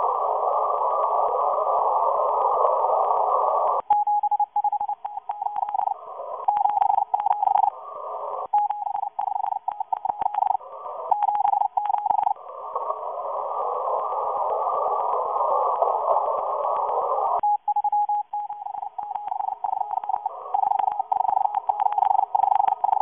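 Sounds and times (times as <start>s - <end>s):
radio static hiss: 0.0s - 23.0s
static crackles and bursts: 0.0s - 23.0s
morse code beeping tone: 3.9s - 5.9s, 6.5s - 7.7s, 8.5s - 12.4s, 17.4s - 23.0s.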